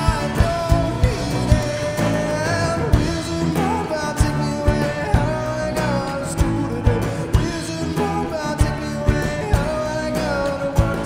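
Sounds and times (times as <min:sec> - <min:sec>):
drum kit beat: 0:00.0 - 0:11.0
man singing: 0:00.0 - 0:11.0
piano: 0:00.0 - 0:11.0
strummed acoustic guitar: 0:00.0 - 0:11.0.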